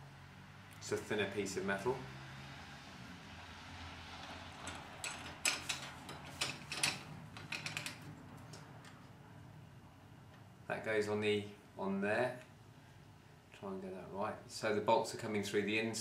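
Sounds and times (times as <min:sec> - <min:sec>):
light metal clicks and knocks: 0:04.2 - 0:09.1
faint steady hum: 0:04.6 - 0:16.0.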